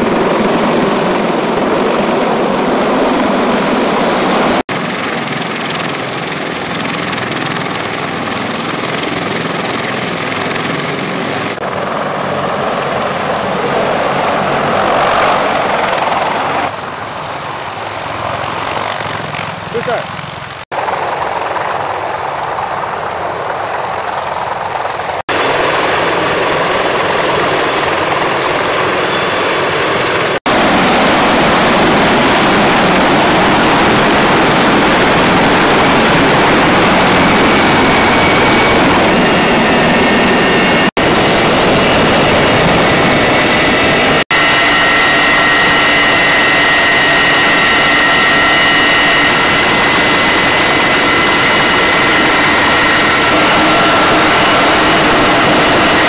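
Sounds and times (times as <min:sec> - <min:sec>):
helicopter rotor and turbine: 0:00.0 - 0:56.0.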